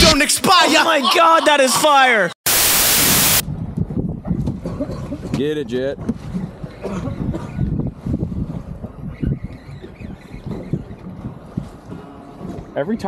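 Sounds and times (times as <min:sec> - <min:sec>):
wind buffeting microphone: 0:03.1 - 0:13.0.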